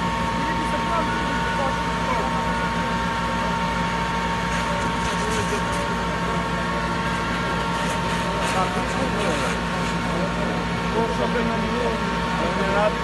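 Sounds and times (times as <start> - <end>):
fire engine running: 0.0 - 13.0.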